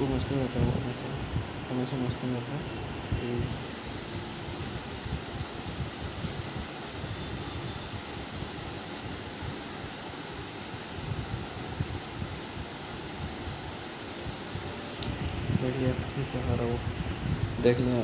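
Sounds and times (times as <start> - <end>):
steady hiss: 0.0 - 18.0.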